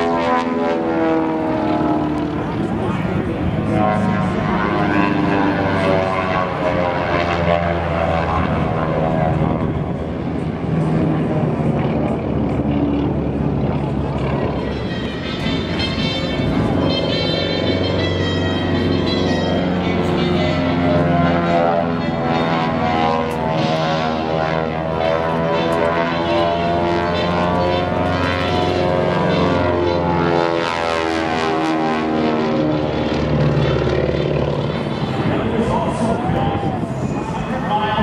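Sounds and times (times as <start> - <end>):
propeller airplane engine drone: 0.0 - 38.0.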